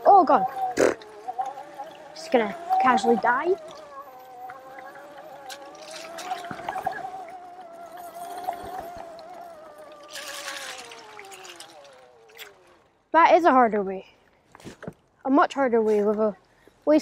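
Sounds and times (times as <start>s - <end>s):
electric motorbike motor whining: 0.0s - 13.1s.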